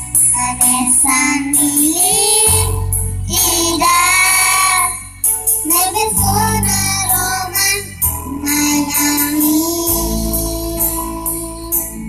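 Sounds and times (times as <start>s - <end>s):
instrumental accompaniment: 0.0s - 12.0s
low bass line: 0.0s - 12.0s
girl singing into microphone: 0.2s - 12.0s.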